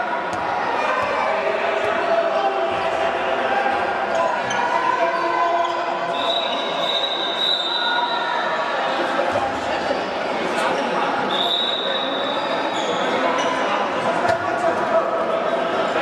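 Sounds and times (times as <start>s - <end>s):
hubbub of voices: 0.0s - 16.0s
ball bouncing on court: 0.3s - 1.2s.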